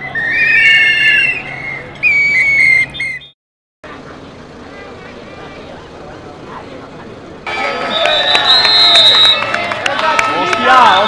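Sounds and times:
shrill whistles blowing: 0.0s - 3.4s, 7.7s - 9.6s
crowd noise: 3.8s - 11.0s.

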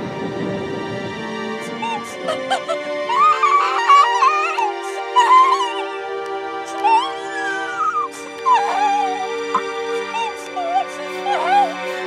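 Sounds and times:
slow music with held chords: 0.0s - 12.0s
cartoon frog wailing: 1.8s - 5.9s, 6.7s - 11.7s.

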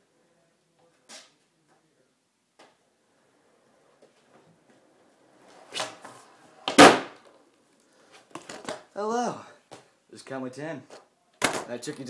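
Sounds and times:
longboard wheels rolling: 3.0s - 7.6s.

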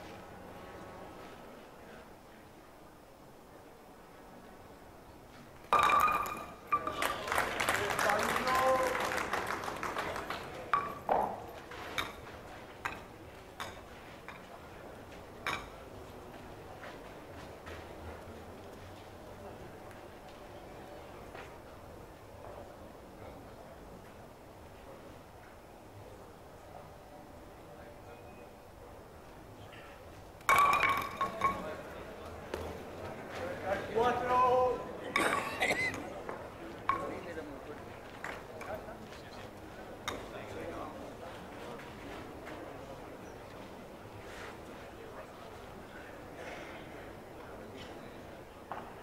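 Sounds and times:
wooden skittles and balls clacking: 5.7s - 7.1s, 30.4s - 31.7s
crowd murmur: 31.4s - 49.0s.

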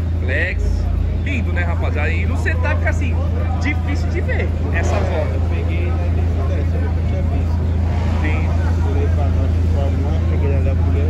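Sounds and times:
car engine idling: 0.0s - 11.0s
crowd chatter: 0.0s - 11.0s.

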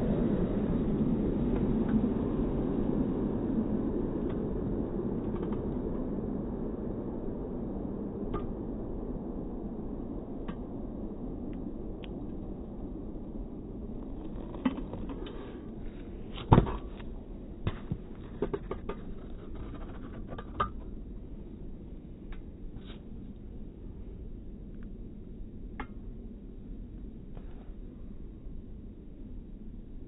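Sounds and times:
scooter rolling over asphalt: 12.2s - 21.2s.

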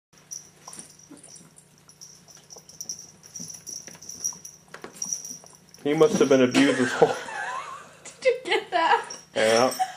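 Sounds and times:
faint high ringing: 0.2s - 7.3s, 8.9s - 9.9s.

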